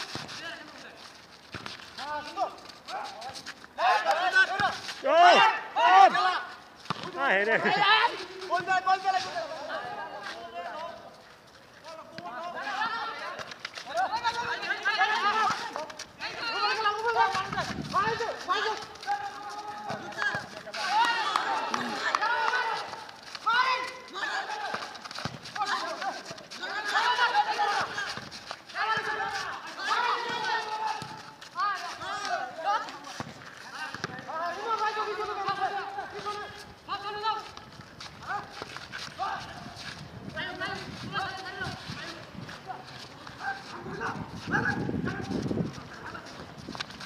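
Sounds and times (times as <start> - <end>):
running footsteps on pavement: 0.0 - 47.0
men shouting calls: 3.8 - 11.0, 11.9 - 33.1, 33.7 - 37.6.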